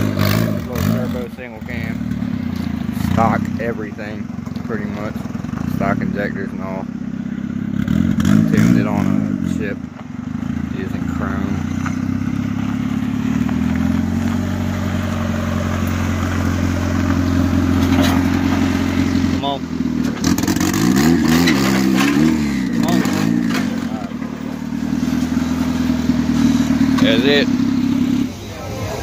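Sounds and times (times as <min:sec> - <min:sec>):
car engine idling and revving: 0:00.0 - 0:29.0.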